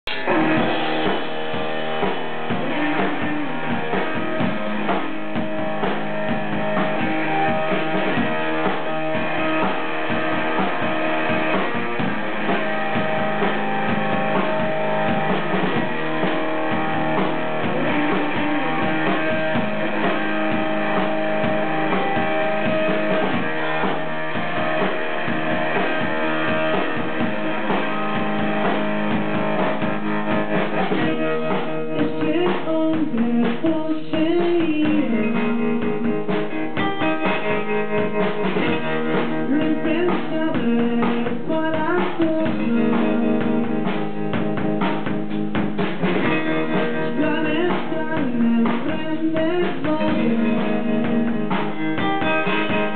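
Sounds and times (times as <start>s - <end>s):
drum kit: 0.0s - 52.9s
electric guitar: 0.0s - 52.9s
man singing: 32.0s - 36.3s, 39.3s - 43.5s, 46.8s - 51.6s.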